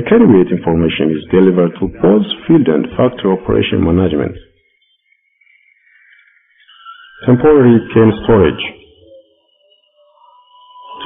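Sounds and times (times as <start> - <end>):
faint sustained music tones: 0.0 - 11.0.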